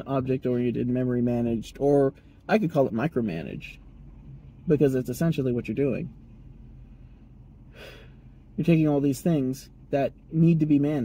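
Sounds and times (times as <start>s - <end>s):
car cabin rumble: 0.0s - 11.0s
man breathing in: 6.9s - 8.4s.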